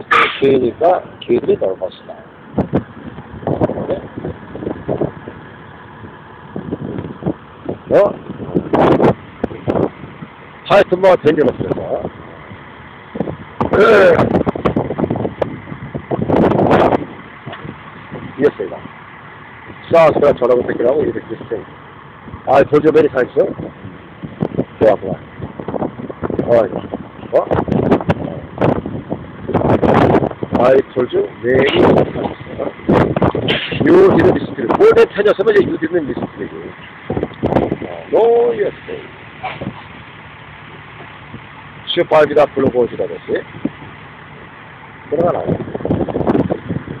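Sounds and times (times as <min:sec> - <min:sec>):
city street traffic hum: 0:00.0 - 0:47.0
vehicle engine idling: 0:00.0 - 0:47.0.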